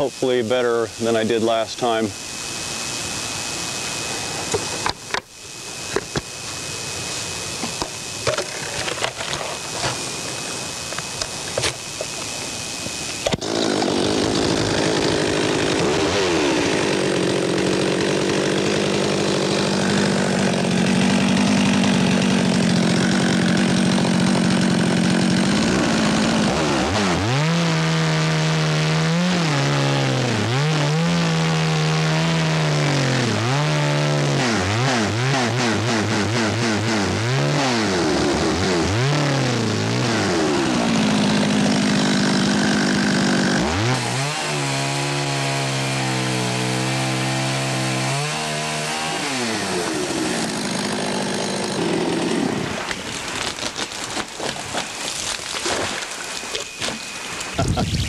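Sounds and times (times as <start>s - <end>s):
chainsaw cutting wood: 1.0s - 58.0s.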